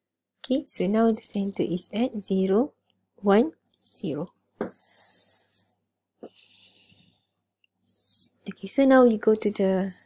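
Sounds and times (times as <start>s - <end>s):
person breathing into microphone: 6.3s - 8.4s.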